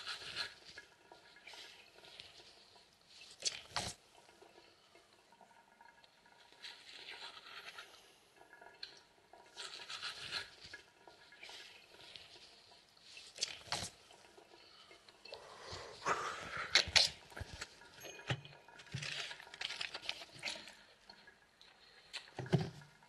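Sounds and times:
tap water splashing: 0:22.1 - 0:23.0.

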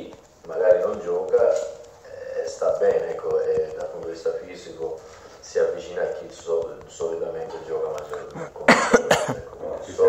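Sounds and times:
person coughing: 0:08.2 - 0:09.5.

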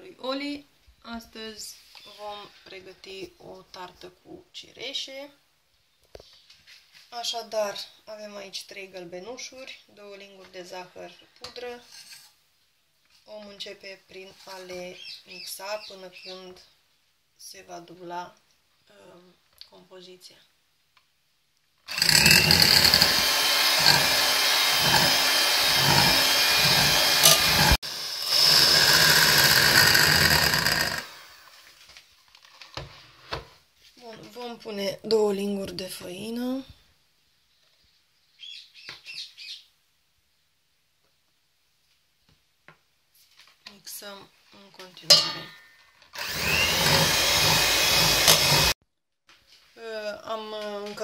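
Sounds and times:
electric hand mixer whisking: 0:21.9 - 0:31.5, 0:46.2 - 0:48.8.

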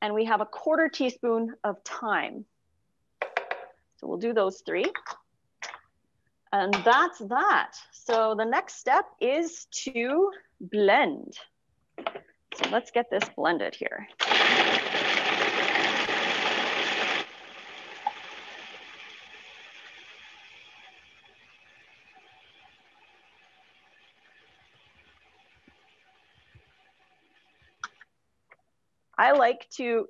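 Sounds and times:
food processor blending: 0:14.2 - 0:17.4.

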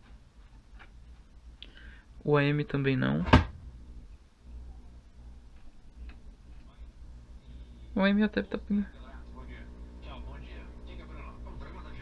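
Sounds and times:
faint low amplifier hum: 0:00.0 - 0:12.0.

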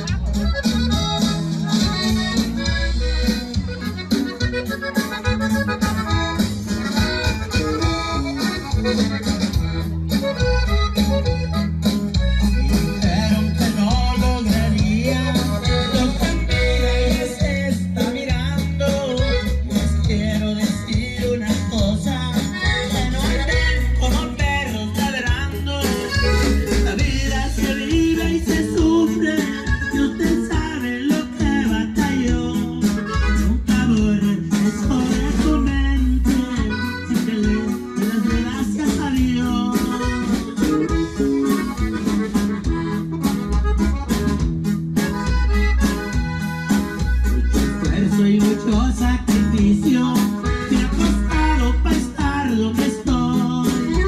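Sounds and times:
button accordion: 0:00.0 - 0:54.0
drum kit: 0:00.0 - 0:54.0
guitar: 0:00.0 - 0:54.0
steady bass beat: 0:00.0 - 0:54.0
man singing: 0:12.7 - 0:41.4, 0:47.6 - 0:54.0.

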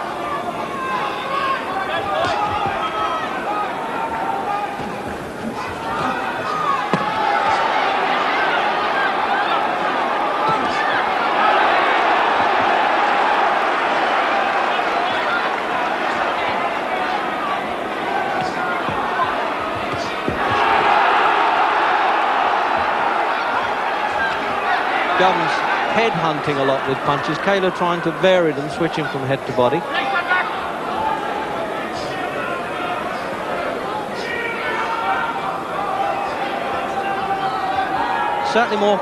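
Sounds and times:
crowd shouting and cheering: 0:00.0 - 0:39.0.

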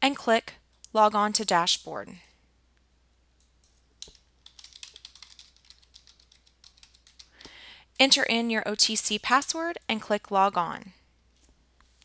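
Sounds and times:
keyboard typing: 0:04.0 - 0:07.5.

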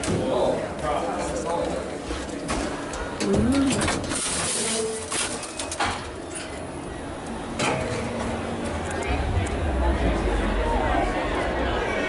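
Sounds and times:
low rising and falling tone: 0:08.2 - 0:12.0.

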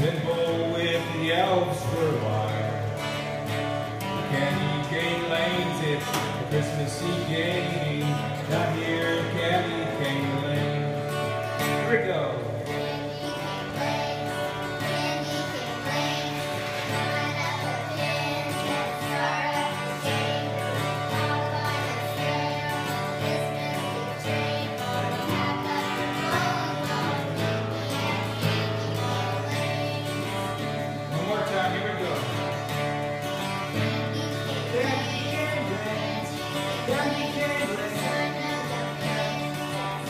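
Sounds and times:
acoustic guitar: 0:00.0 - 0:40.0
girls singing together: 0:12.6 - 0:31.2, 0:32.4 - 0:40.0.

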